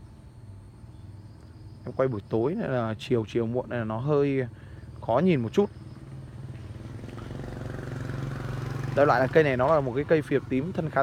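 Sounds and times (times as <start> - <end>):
engine running: 5.7 - 11.0.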